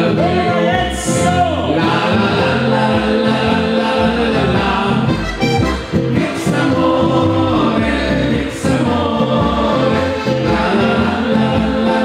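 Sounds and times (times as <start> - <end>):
double bass oom-pah beat: 0.0 - 12.0
two voices singing: 0.0 - 12.0
button accordion: 1.8 - 12.0.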